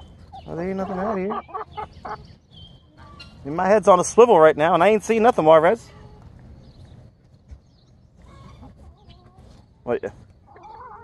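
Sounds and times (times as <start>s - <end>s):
chickens clucking: 0.0s - 5.7s, 6.6s - 11.0s.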